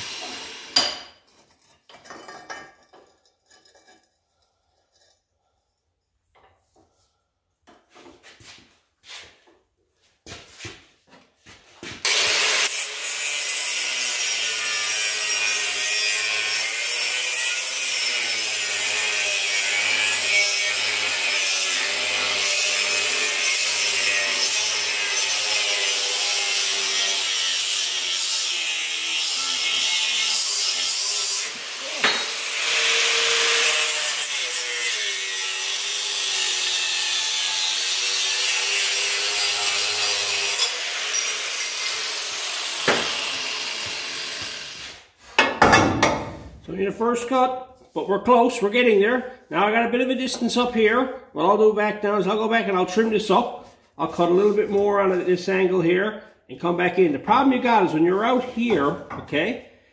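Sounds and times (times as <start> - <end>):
angle grinder cutting steel: 0.0 - 1.2, 12.0 - 46.5.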